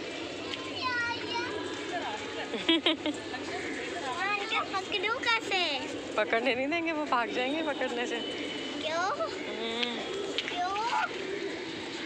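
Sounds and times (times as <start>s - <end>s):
child's high-pitched call: 8.8s - 9.5s, 10.5s - 11.1s.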